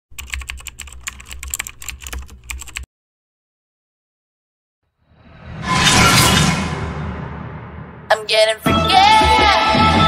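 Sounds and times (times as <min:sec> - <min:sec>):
keyboard typing clicks: 0:00.2 - 0:02.9.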